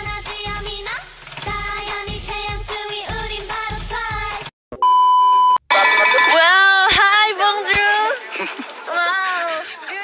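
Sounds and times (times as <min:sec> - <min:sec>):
pop music: 0:00.0 - 0:04.5, 0:05.7 - 0:08.1
electronic beep tone: 0:04.8 - 0:06.7
high voice: 0:05.7 - 0:07.9.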